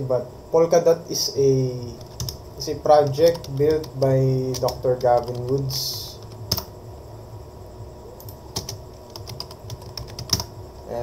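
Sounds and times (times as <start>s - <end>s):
typing on computer keyboard: 2.0s - 2.4s, 3.0s - 6.7s, 8.6s - 10.5s.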